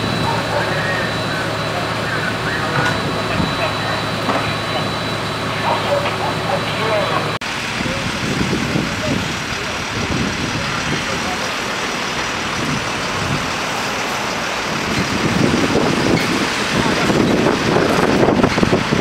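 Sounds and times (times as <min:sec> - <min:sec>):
diesel engines rumbling: 0:00.0 - 0:19.0
indistinct voices: 0:00.0 - 0:19.0.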